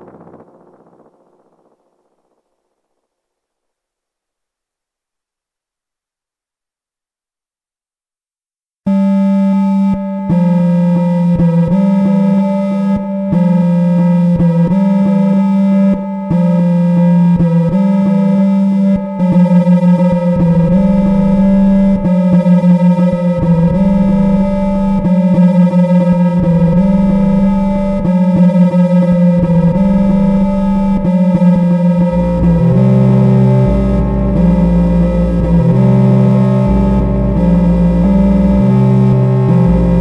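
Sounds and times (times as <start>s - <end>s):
low rumble: 0.0s - 3.1s, 20.4s - 22.1s, 23.4s - 25.2s, 26.3s - 28.1s, 29.3s - 31.2s, 31.8s - 40.0s
electronic oscillator drone: 8.9s - 40.0s
low note switching pitches: 8.9s - 40.0s.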